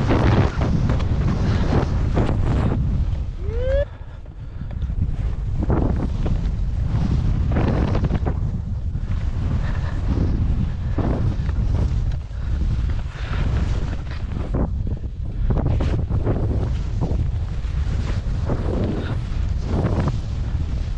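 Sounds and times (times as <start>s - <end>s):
skis swooshing through snow: 0.0s - 3.8s, 4.8s - 20.9s
wind buffeting microphone: 0.0s - 20.9s.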